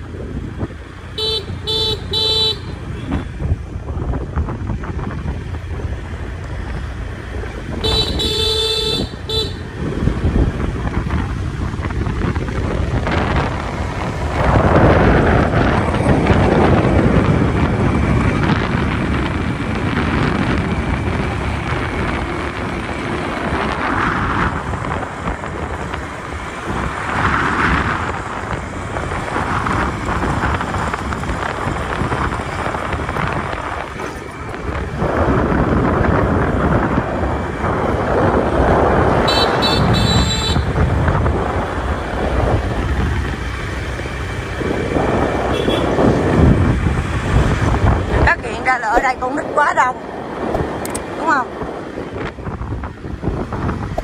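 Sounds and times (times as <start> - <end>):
motorbike running: 0.0 - 54.0
wind buffeting microphone: 0.0 - 54.0
motorbike horn toots: 1.1 - 3.3, 7.7 - 9.8, 39.2 - 40.9, 45.4 - 46.0.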